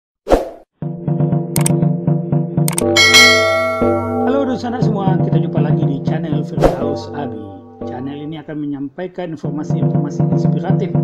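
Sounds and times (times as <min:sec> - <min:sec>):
plucked rhythm music: 0:00.8 - 0:08.7, 0:09.4 - 0:11.0
short hit: 0:02.8 - 0:04.5
bright bell-like dings: 0:03.0 - 0:04.4
ringing chime: 0:03.0 - 0:04.4.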